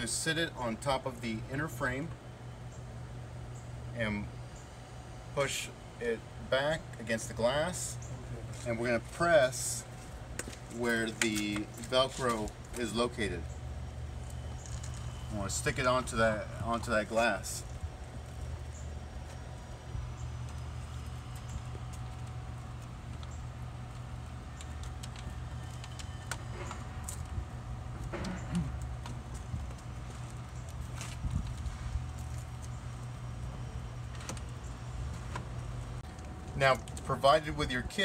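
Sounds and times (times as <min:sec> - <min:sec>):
steady low hum: 0:00.0 - 0:38.0.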